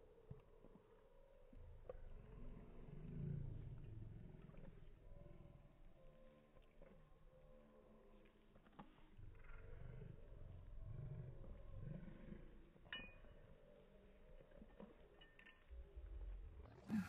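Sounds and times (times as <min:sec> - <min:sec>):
light clink: 0:12.8 - 0:16.4.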